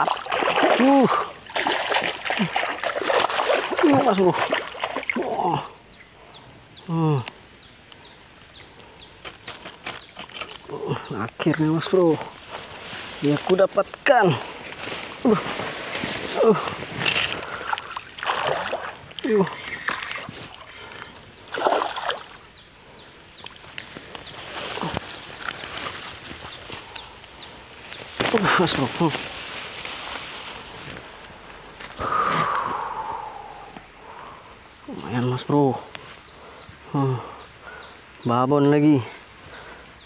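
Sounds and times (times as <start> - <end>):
fish splashing in water: 0.0 - 5.3, 17.5 - 19.0, 21.5 - 22.4
man grunting: 6.9 - 7.3, 16.4 - 16.7.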